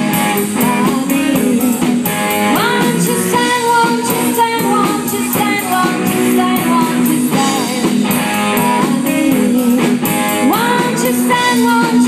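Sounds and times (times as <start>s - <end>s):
electric guitar: 0.0s - 12.0s
rock band playing: 0.0s - 12.0s.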